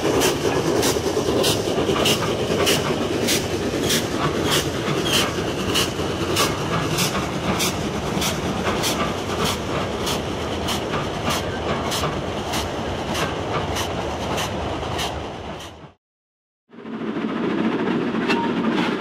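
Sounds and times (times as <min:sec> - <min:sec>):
train wheels clattering: 0:00.0 - 0:15.9
steam train rumbling roar: 0:00.0 - 0:16.0.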